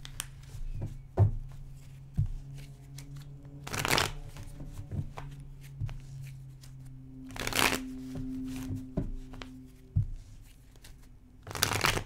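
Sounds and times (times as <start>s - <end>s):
cards riffling: 0.0s - 0.7s, 1.8s - 5.3s, 6.0s - 8.7s, 10.5s - 12.0s.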